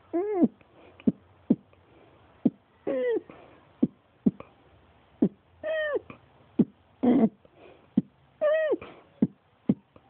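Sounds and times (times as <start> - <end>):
cat meowing: 5.6 - 6.1.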